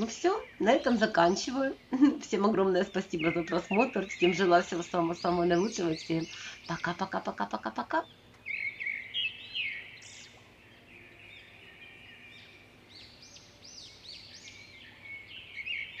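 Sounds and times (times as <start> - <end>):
songbird chirping: 0.0 - 16.0.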